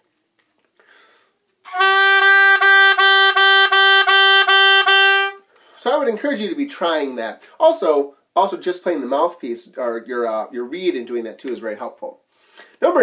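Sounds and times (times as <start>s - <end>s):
oboe repeated tongued notes: 1.7s - 5.4s.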